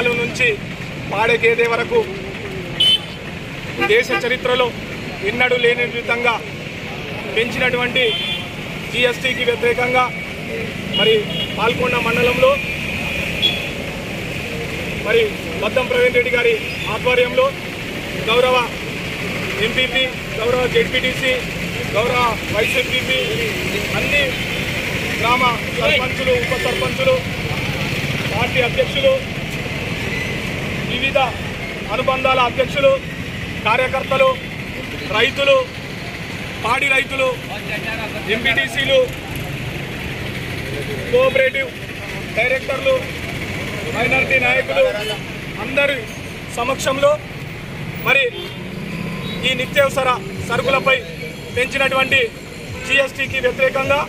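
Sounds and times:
outdoor background noise: 0:00.0 - 0:54.0
street background rumble: 0:00.0 - 0:54.0.

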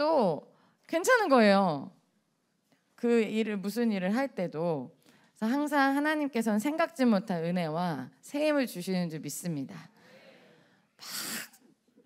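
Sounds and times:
woman breathing into microphone: 0:10.0 - 0:11.5.

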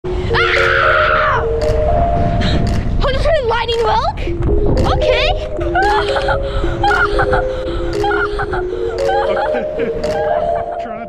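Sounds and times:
music with sustained notes: 0:00.0 - 0:11.0
wind rumble on microphone: 0:00.1 - 0:08.0
boy screaming: 0:00.3 - 0:01.5.

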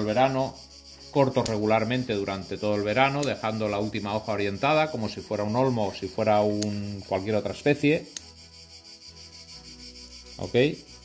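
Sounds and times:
faint steady background: 0:00.0 - 0:11.0
scissors snipping: 0:06.6 - 0:06.9.

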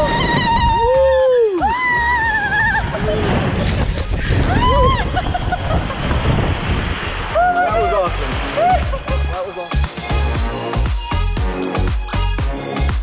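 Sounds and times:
background music: 0:00.0 - 0:05.3, 0:07.3 - 0:13.0
water rushing and splashing: 0:00.0 - 0:13.0
people shouting excitedly: 0:07.3 - 0:09.2.

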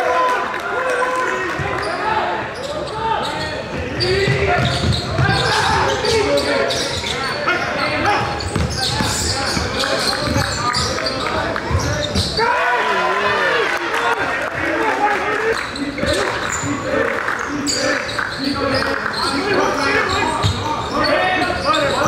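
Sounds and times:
voices in a gym: 0:00.0 - 0:22.0
sneaker squeaks: 0:01.6 - 0:12.6, 0:15.5 - 0:22.0
basketball bouncing on hardwood: 0:08.4 - 0:09.2.

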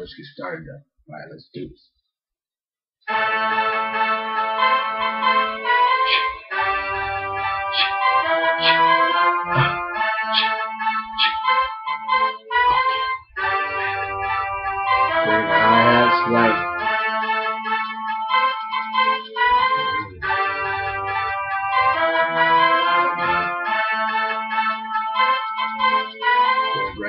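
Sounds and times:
sustained synth melody: 0:03.1 - 0:27.0
low bass line: 0:13.5 - 0:17.0, 0:19.4 - 0:22.6, 0:26.8 - 0:27.0.

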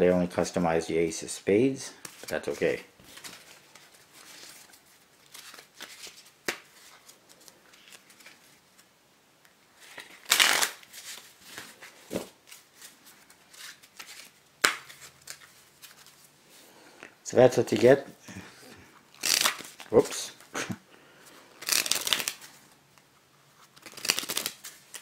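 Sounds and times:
cards rustling: 0:02.0 - 0:08.9, 0:09.8 - 0:16.3, 0:19.1 - 0:20.4, 0:21.6 - 0:22.7, 0:23.6 - 0:25.0
playing cards snapping: 0:14.0 - 0:15.0, 0:19.2 - 0:19.8, 0:21.6 - 0:22.4, 0:23.8 - 0:25.0
cards sliding: 0:19.2 - 0:20.1, 0:21.6 - 0:22.6, 0:23.6 - 0:25.0.

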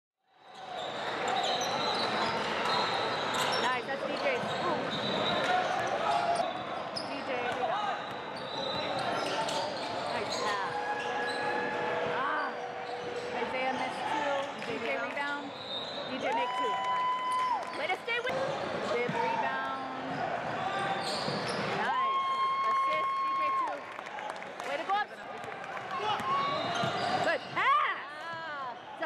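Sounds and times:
sneakers squeaking: 0:00.4 - 0:11.8, 0:12.4 - 0:16.7, 0:17.3 - 0:23.3, 0:25.1 - 0:29.0
basketball bouncing on court: 0:25.4 - 0:27.8.

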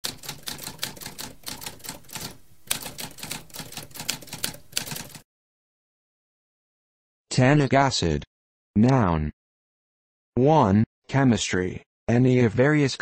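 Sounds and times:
typewriter keys typing: 0:00.0 - 0:05.2.

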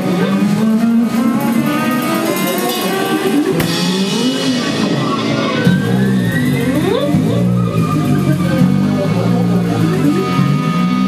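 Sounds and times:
electric guitar sliding in pitch: 0:00.0 - 0:11.0
live band music: 0:00.0 - 0:11.0.

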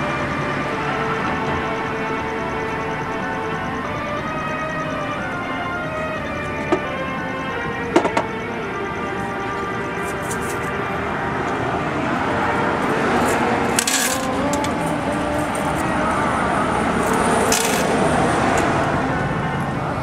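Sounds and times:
background music: 0:00.0 - 0:20.0
coins jingling into coin return: 0:10.0 - 0:10.7, 0:13.1 - 0:16.0, 0:17.0 - 0:18.1.

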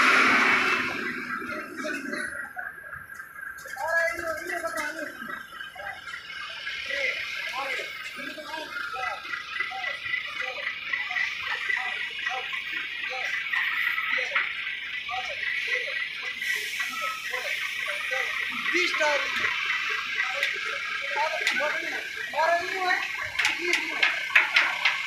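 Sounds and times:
people talking indistinctly: 0:01.1 - 0:25.0
steady hiss: 0:06.6 - 0:25.0.

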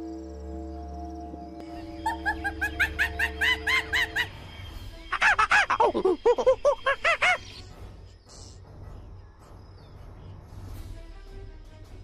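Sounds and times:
animal calling: 0:02.0 - 0:04.4.

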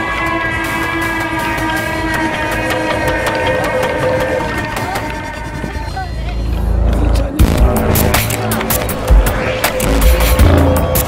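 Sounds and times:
crowd voices: 0:00.0 - 0:11.0
parade music: 0:00.0 - 0:11.0
deep rumble: 0:01.2 - 0:11.0.

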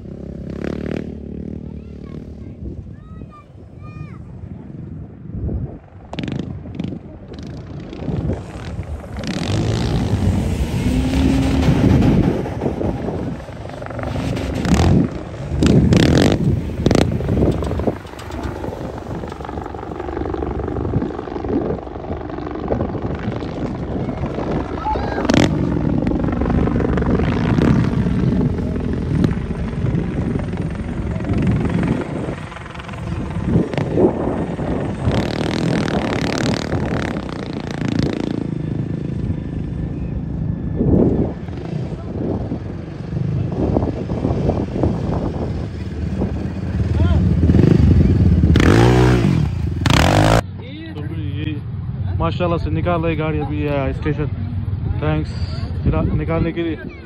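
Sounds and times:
quad bike engine running: 0:00.0 - 0:02.6, 0:06.1 - 0:50.5
indistinct voices: 0:24.0 - 0:35.2.

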